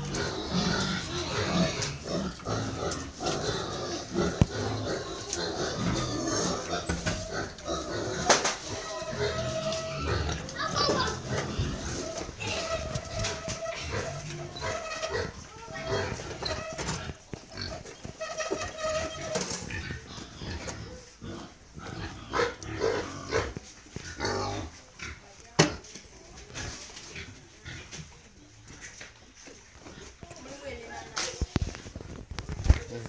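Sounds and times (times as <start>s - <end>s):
pigs squealing: 0.0s - 25.2s
background voices: 0.0s - 29.0s.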